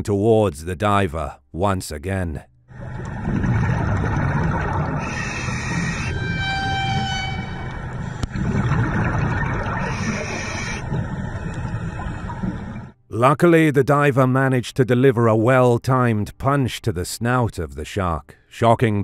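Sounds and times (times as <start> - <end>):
underwater rumble and bubbles: 2.7 - 13.0
scuba regulator breath hissing: 5.0 - 6.1, 9.8 - 13.0
horn-like tone: 5.0 - 8.3.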